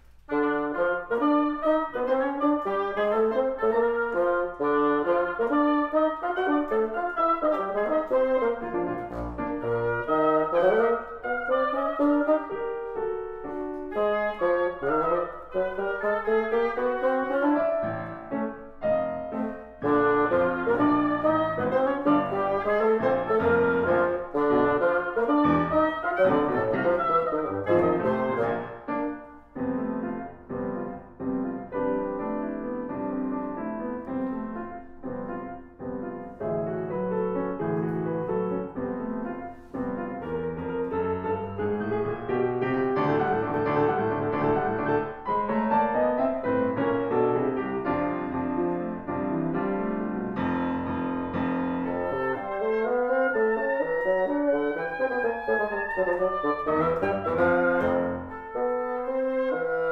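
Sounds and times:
grand piano: 0.0s - 59.9s
bassoon: 0.3s - 59.9s
oboe: 0.3s - 59.9s.

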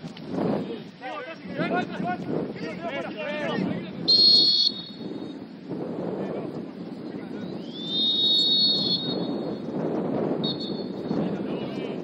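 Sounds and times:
referee's whistle blast: 4.1s - 5.3s, 7.6s - 9.5s, 10.4s - 11.0s.

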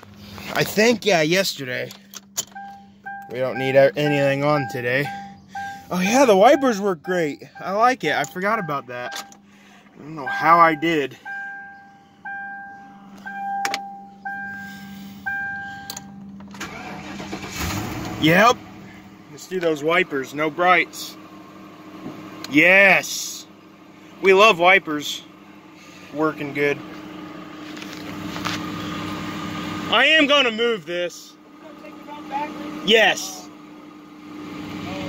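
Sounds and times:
car engine starting: 0.0s - 35.0s
dashboard warning chime dinging: 1.4s - 17.2s.

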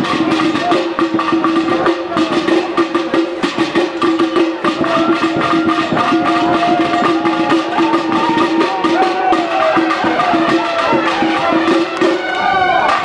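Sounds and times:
quick dense drumming: 0.0s - 13.0s.

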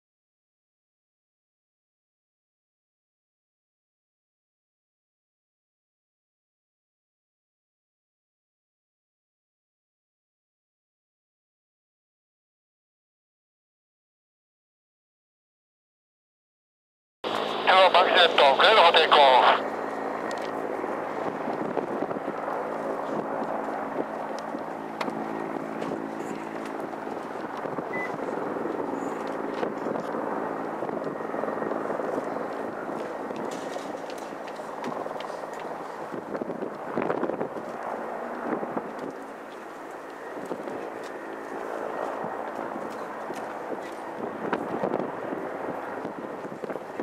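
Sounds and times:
jet engines running: 17.2s - 47.0s.

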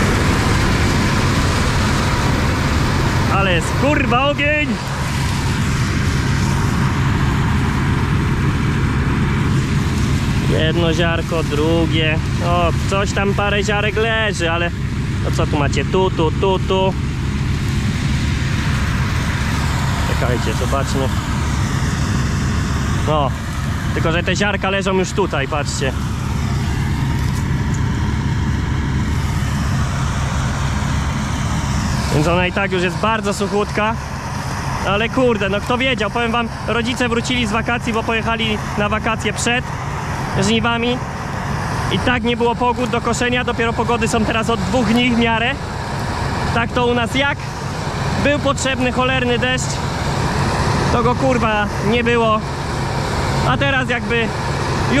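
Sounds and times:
engine drone: 0.0s - 55.0s
threshing and fan noise: 0.0s - 55.0s.

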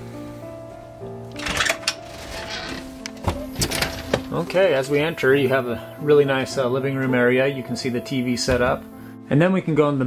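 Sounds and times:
background music with held notes: 0.0s - 10.0s
screen door rattling: 1.3s - 5.0s.

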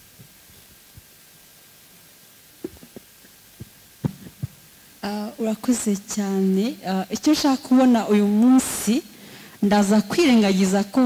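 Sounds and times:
faint steady hiss: 0.0s - 11.0s
microphone handling thumps: 2.6s - 4.6s.

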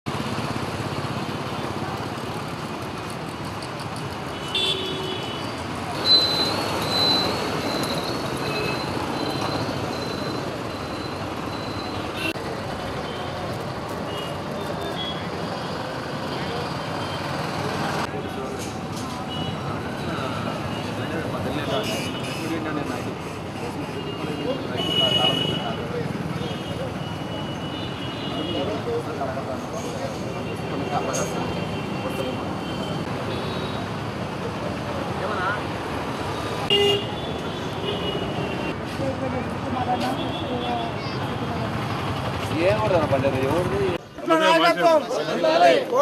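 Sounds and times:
street traffic noise: 0.0s - 46.0s
vehicle horns: 4.3s - 6.8s, 24.0s - 28.9s, 36.6s - 38.8s
high beeping tone: 6.0s - 12.2s.

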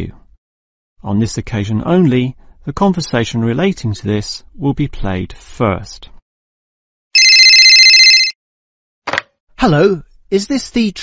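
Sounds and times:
electronic telephone ringing: 7.2s - 8.4s.

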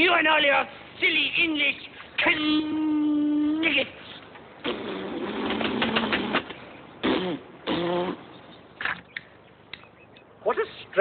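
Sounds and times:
man blowing raspberry: 4.6s - 8.4s.

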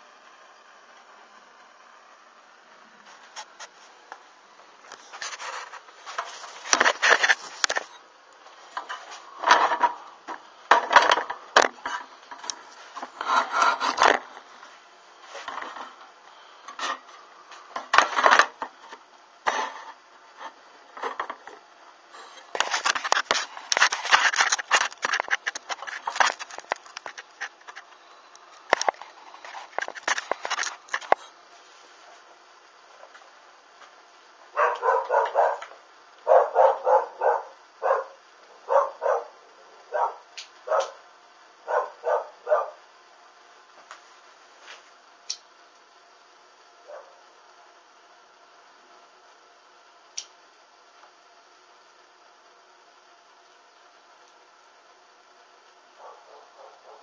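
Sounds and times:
rustling and rubbing: 4.9s - 8.0s, 11.9s - 16.0s, 22.2s - 27.9s.

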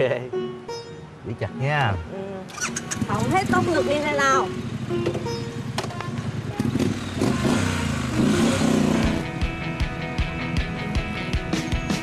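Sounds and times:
background music: 0.0s - 12.0s
motorcycle engine revving: 2.5s - 9.4s.

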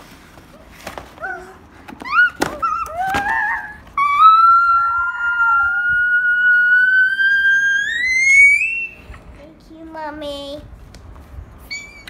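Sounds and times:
child squealing: 1.3s - 9.1s, 11.7s - 12.0s.

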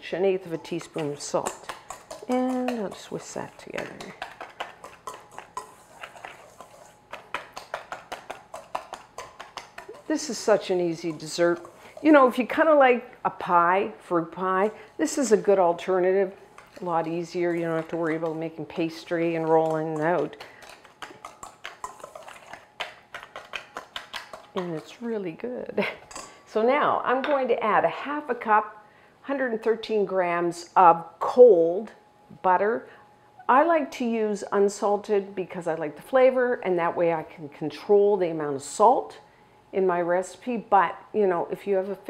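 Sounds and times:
wire whisk scraping metal bowl: 0.4s - 12.7s, 16.1s - 25.0s.

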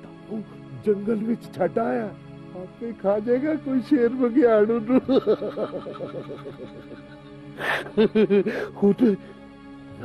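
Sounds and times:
man laughing: 4.8s - 8.7s.

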